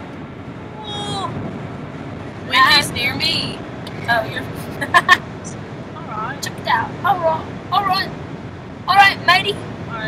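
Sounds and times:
car cabin road noise: 0.0 - 10.0
women's high voices: 0.8 - 1.4.

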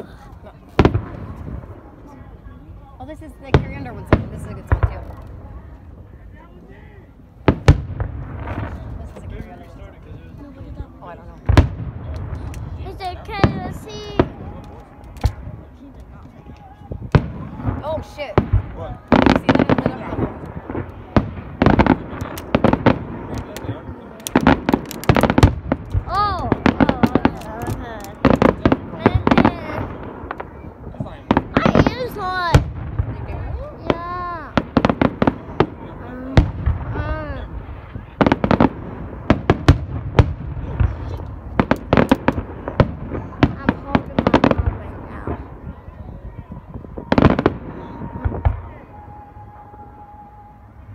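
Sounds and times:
fireworks bangs and crackles: 0.0 - 50.9.

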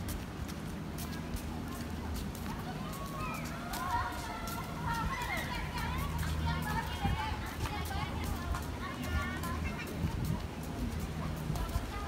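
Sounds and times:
distant children and people talking: 0.7 - 12.0.

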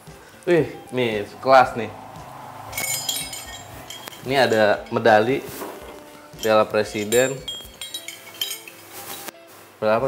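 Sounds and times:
metal medals clinking: 1.3 - 9.3.

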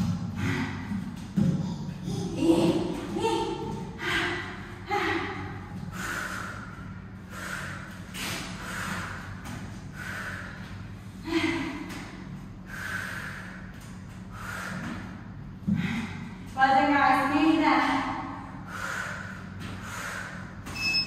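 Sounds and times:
woman breathing hard: 0.0 - 2.9, 3.8 - 16.6, 18.4 - 20.8.

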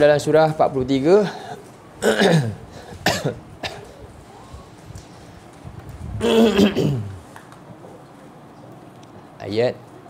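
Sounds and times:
man coughing: 1.2 - 4.1, 6.2 - 7.2.

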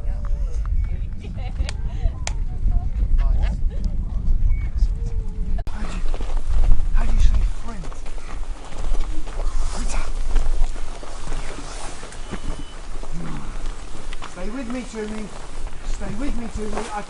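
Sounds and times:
wind on microphone: 0.0 - 17.0
footsteps on gravel: 5.7 - 17.0
voices: 6.9 - 17.0.

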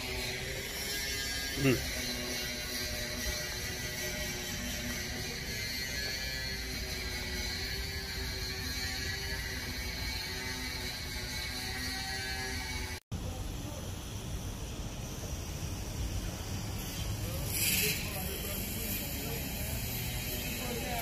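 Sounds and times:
mechanical running with held tones: 0.0 - 13.0.

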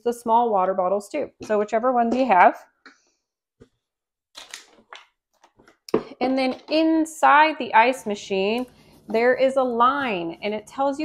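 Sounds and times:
plastic bottles crinkling and knocking: 4.4 - 6.9.

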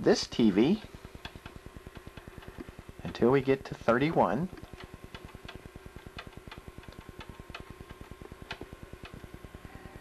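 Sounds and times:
fast faint ticking: 0.8 - 9.6.

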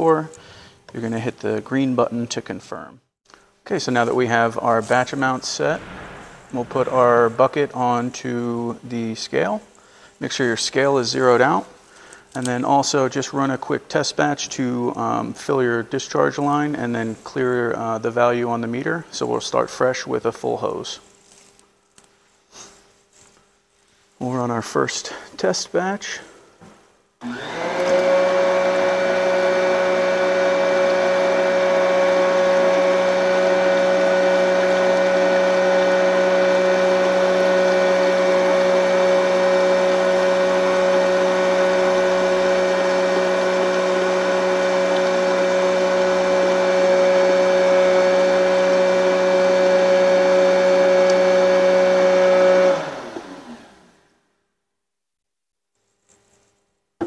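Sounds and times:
electric pump motor whining: 27.2 - 53.9.

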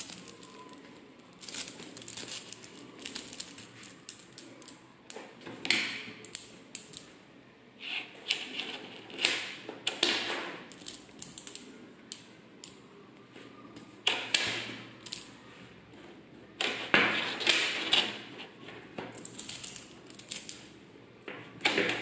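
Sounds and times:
magnetic metal balls clicking: 9.2 - 12.8.

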